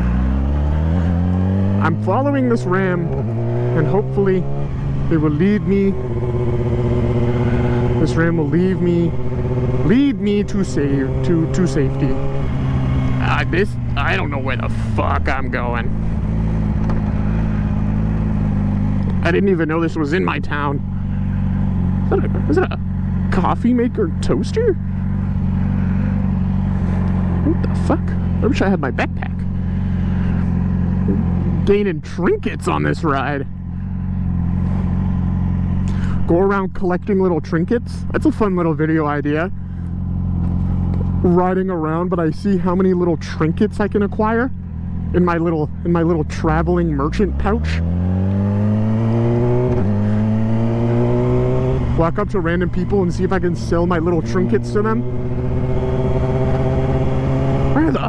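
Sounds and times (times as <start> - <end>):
motorcycle engine running steadily: 0.0 - 58.0.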